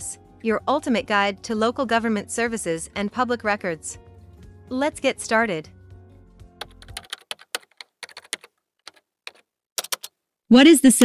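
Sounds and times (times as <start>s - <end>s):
background music: 0.0s - 7.7s
keyboard typing: 6.6s - 10.2s.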